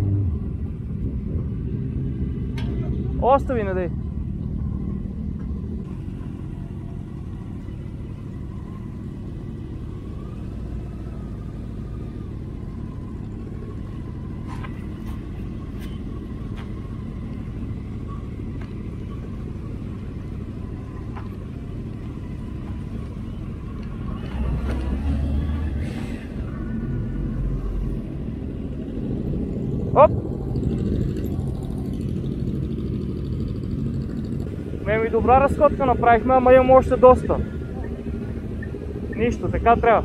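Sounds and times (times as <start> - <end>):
motorcycle engine idling: 2.6 - 24.3, 28.0 - 40.0.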